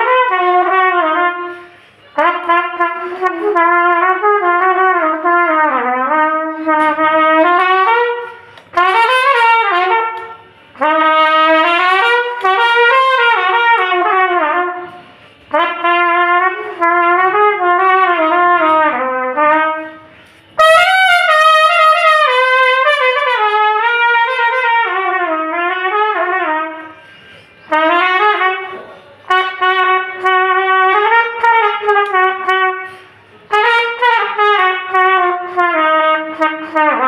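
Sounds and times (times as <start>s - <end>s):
solo trumpet melody: 0.0s - 37.0s.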